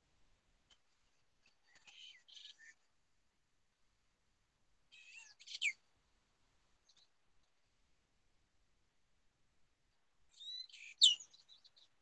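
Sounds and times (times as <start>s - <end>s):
bird chirping: 4.9s - 5.8s, 10.3s - 12.0s.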